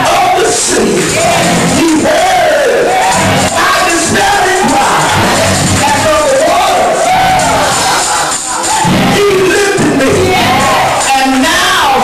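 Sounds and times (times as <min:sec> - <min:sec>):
preacher chanting through loudspeakers: 0:00.0 - 0:07.7
background music: 0:00.0 - 0:12.0.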